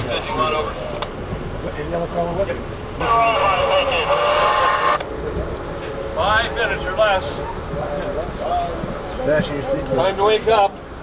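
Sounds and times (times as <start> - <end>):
rumble of moving train coach: 0.0 - 11.0.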